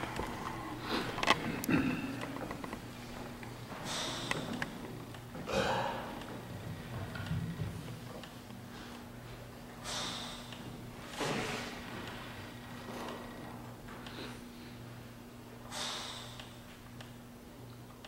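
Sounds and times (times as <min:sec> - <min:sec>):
low electrical hum: 0:00.0 - 0:18.0.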